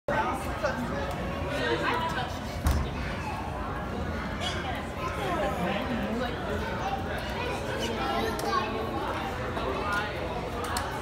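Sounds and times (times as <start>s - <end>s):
background chatter of voices: 0.1s - 11.0s.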